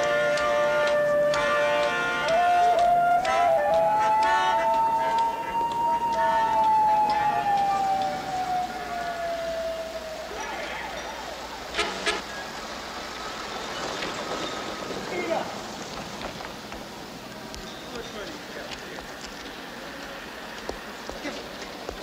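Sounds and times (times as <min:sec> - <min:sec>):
street background: 0:00.0 - 0:22.0.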